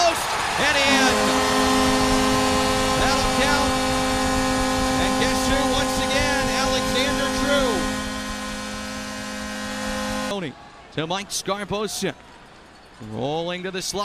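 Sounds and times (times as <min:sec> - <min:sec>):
goal horn blast: 0:00.0 - 0:10.5
crowd cheering: 0:00.0 - 0:12.8.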